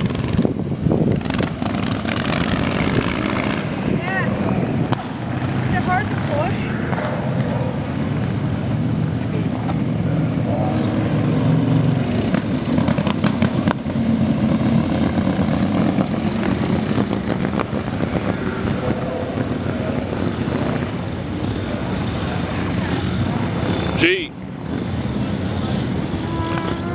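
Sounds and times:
motorcycle engine running: 0.0s - 26.9s.

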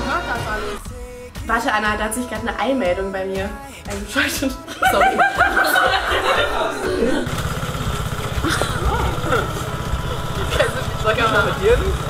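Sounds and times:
woman laughing: 4.3s - 7.3s, 8.4s - 11.0s
scooter engine idling: 6.4s - 12.0s.

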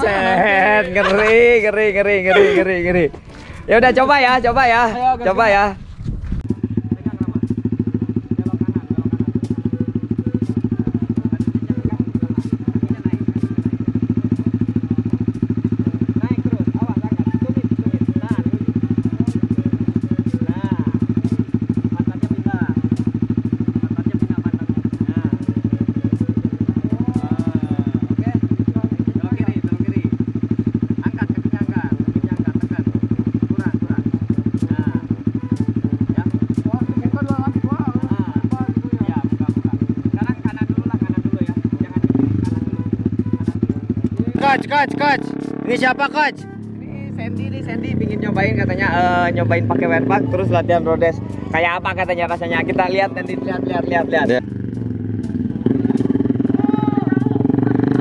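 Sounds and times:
motorcycle engine idling: 0.0s - 58.0s.

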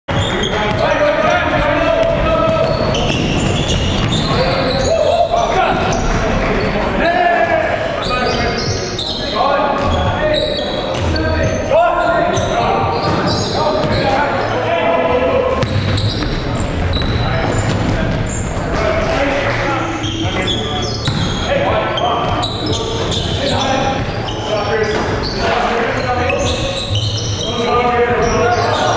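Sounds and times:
players' voices echoing: 0.1s - 28.9s
basketball bouncing on wooden floor: 0.7s - 4.4s, 21.0s - 21.4s.

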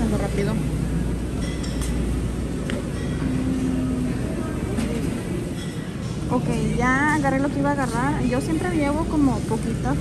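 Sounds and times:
faint music: 0.0s - 10.0s
light clinks: 1.4s - 2.1s.

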